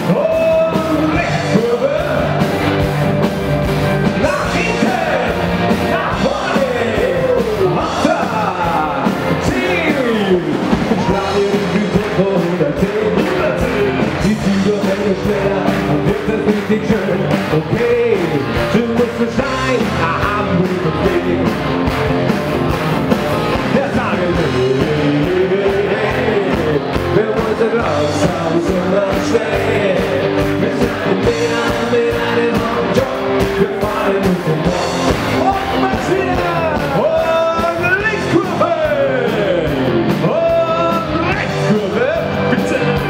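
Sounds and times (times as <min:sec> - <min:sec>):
party band playing with singing: 0:00.0 - 0:43.0.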